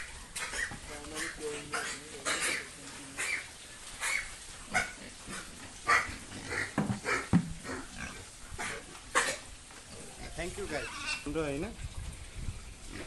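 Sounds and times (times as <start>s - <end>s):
pigs grunting: 0.0s - 11.4s.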